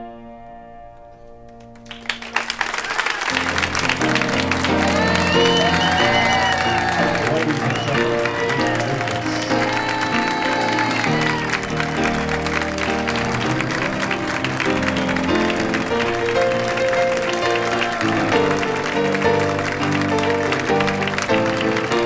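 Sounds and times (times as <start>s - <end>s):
piano chord: 0.0s - 22.0s
audience applause: 1.6s - 22.0s.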